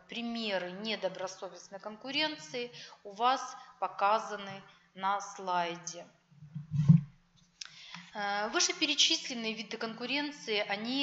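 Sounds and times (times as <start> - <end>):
loud low thump: 6.6 - 7.1.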